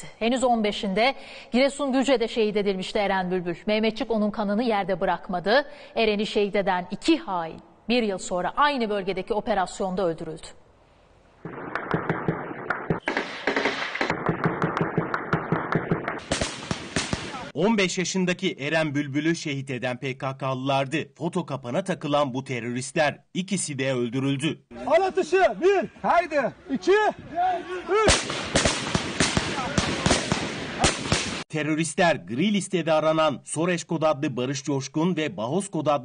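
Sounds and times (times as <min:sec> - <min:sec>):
rapid gunfire bursts: 0:11.5 - 0:17.5, 0:28.1 - 0:31.4
person counting aloud: 0:24.8 - 0:28.2.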